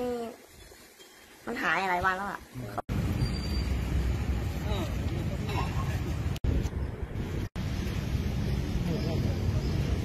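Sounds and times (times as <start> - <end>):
low street rumble: 1.6 - 10.0.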